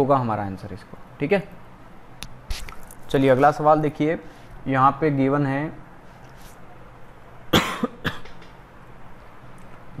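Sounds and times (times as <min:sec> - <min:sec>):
man coughing: 0:07.5 - 0:08.2.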